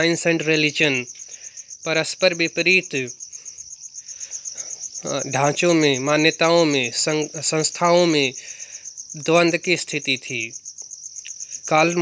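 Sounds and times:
cricket chirping: 0:00.0 - 0:12.0.

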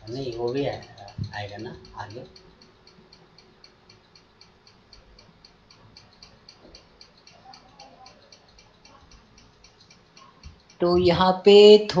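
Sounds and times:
faint rapid ticking: 0:00.0 - 0:12.0
low background noise: 0:00.0 - 0:12.0.

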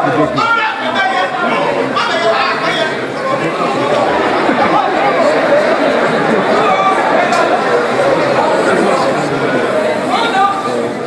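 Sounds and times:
several voices chattering: 0:00.0 - 0:11.0.

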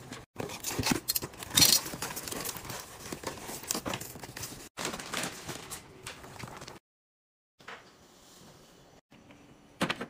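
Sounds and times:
paper and packaging crinkling: 0:00.4 - 0:06.8.

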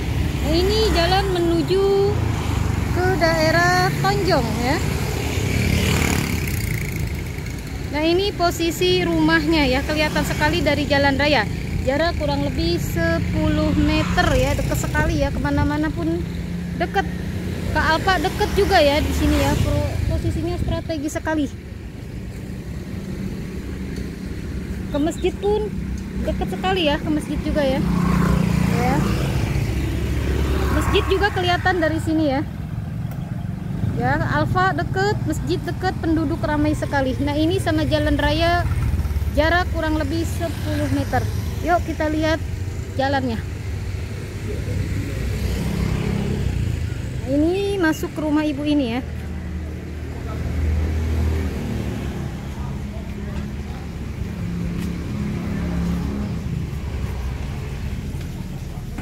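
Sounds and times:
motorcycle passing: 0:00.0 - 0:59.0.

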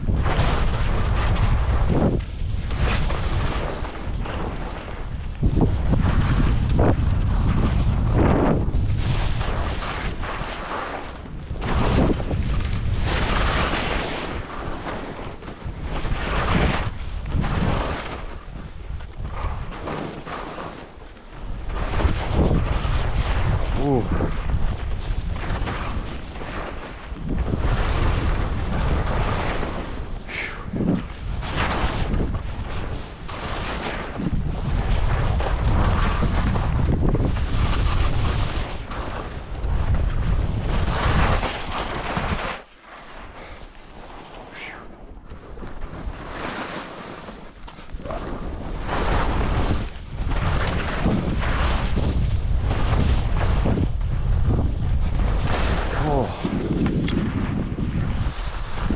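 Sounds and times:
skis scraping over snow: 0:00.0 - 0:58.9
wind rumble on microphone: 0:00.0 - 0:58.9.

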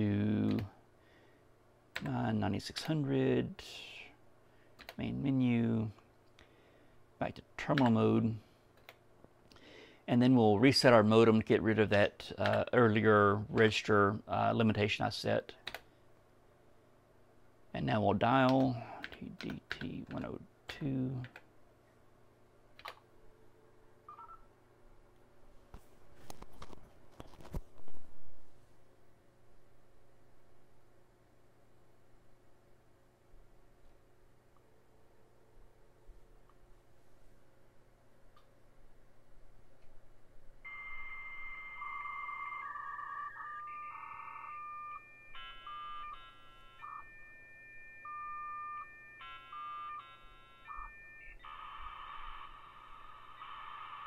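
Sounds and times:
two-tone beep: 0:40.7 - 0:51.6
modem touch-tone dialing: 0:40.7 - 0:54.0.

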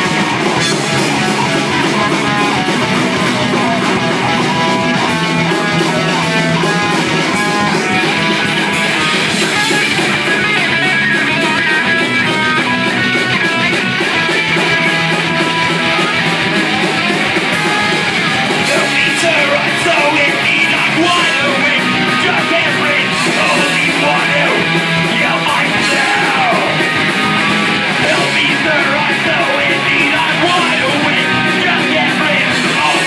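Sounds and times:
live rock band playing: 0:00.0 - 0:33.0.

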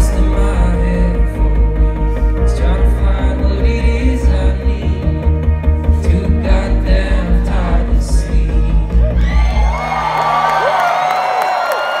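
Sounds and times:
heavy pulsing bass beat: 0:00.0 - 0:09.7
synthwave band playing: 0:00.0 - 0:11.6
audience cheering and whooping: 0:08.9 - 0:12.0.

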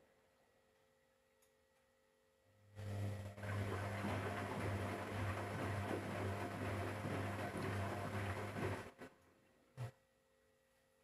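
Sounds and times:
washing machine running: 0:02.8 - 0:09.2.

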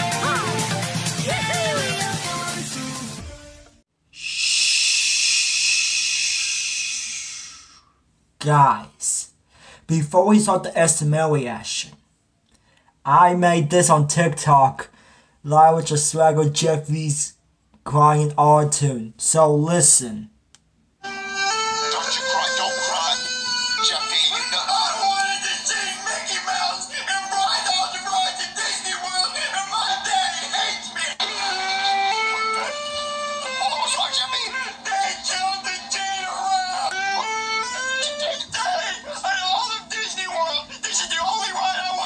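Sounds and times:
autotuned crying voice singing: 0:00.0 - 0:03.6, 0:21.3 - 0:41.8
synthesized music track: 0:00.0 - 0:03.8, 0:21.0 - 0:28.0, 0:30.2 - 0:39.2
high-pitched hiss: 0:04.1 - 0:07.9.

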